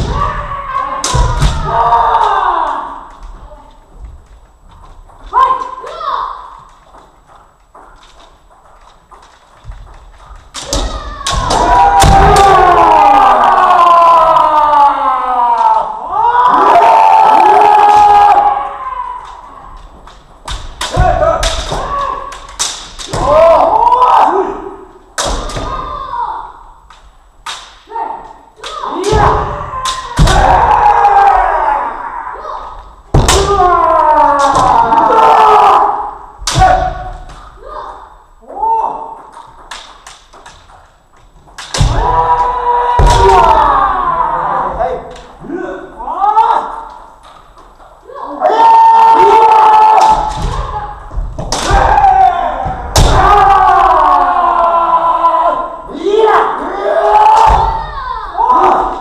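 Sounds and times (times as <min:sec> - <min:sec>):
people shouting long cries: 0:00.0 - 0:03.2, 0:10.6 - 0:19.8, 0:20.8 - 0:24.9, 0:27.9 - 0:39.2, 0:41.8 - 0:47.0, 0:48.1 - 0:59.0
bamboo swords striking: 0:20.1 - 0:23.6, 0:26.9 - 0:27.9, 0:33.1 - 0:33.7, 0:51.4 - 0:52.1.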